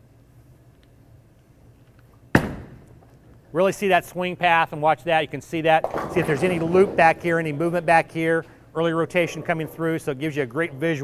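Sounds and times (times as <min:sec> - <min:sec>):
low steady alley hum: 0:00.0 - 0:11.0
bowling pins impact: 0:02.3 - 0:03.1, 0:05.7 - 0:07.6, 0:09.1 - 0:10.1.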